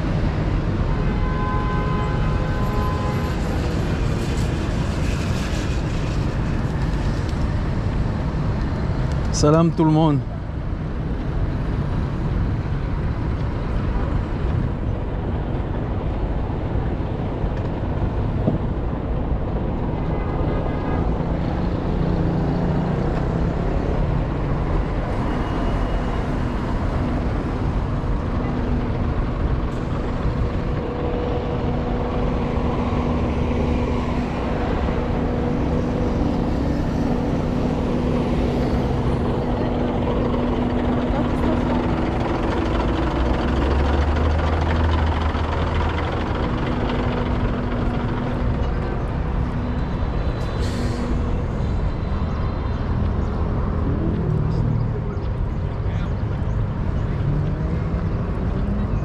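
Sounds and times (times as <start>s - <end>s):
steady engine hum: 0.0s - 59.0s
traffic tyre noise: 0.0s - 59.0s
heavy low rumble: 26.4s - 59.0s.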